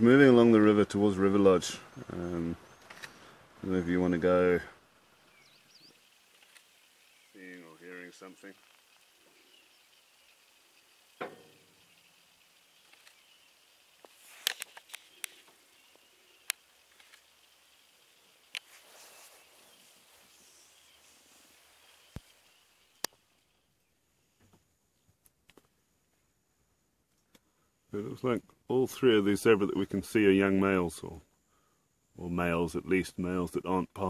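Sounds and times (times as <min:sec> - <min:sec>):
sharp clicks: 0:02.8 - 0:03.2, 0:06.3 - 0:06.8, 0:12.8 - 0:13.4, 0:14.0 - 0:17.4, 0:23.0 - 0:23.2.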